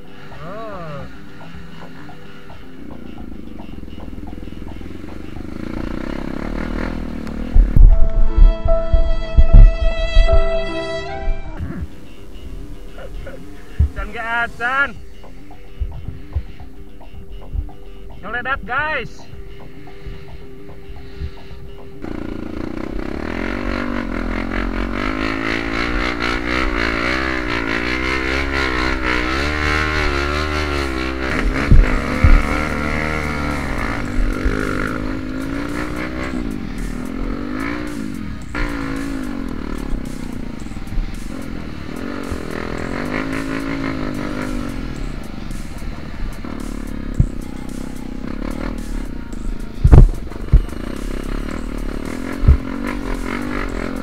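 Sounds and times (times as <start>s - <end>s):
motorcycle engine revving: 0.0s - 18.6s, 19.3s - 54.0s.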